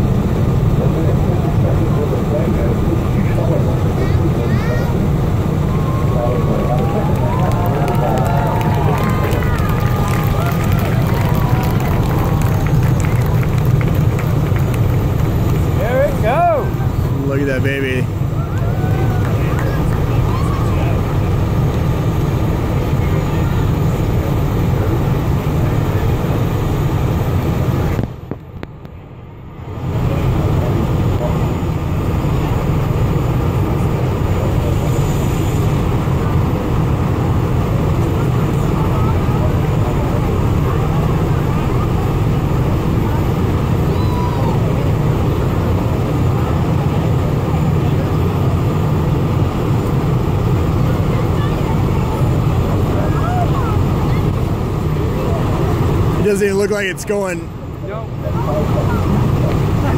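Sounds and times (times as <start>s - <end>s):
distant rocket rumble: 0.0s - 28.9s.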